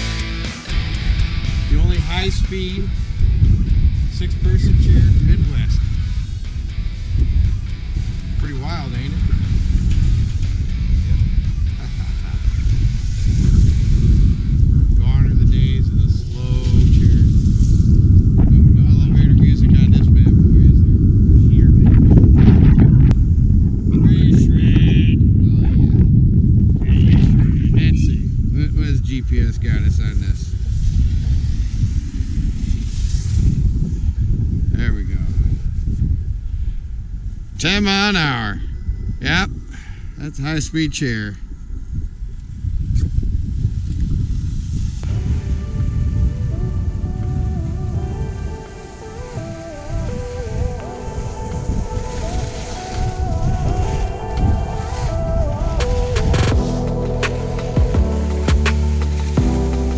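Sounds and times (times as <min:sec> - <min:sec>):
music: 0:00.0 - 0:15.0, 0:45.0 - 0:59.9
low rumble: 0:00.0 - 0:59.9
voices: 0:23.9 - 0:26.1, 0:26.8 - 0:30.6.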